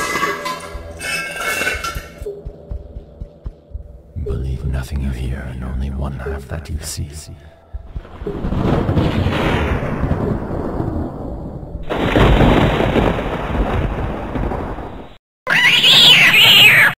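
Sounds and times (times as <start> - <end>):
low rumbling noise: 2.1 - 14.8
cat yowling: 15.5 - 17.0.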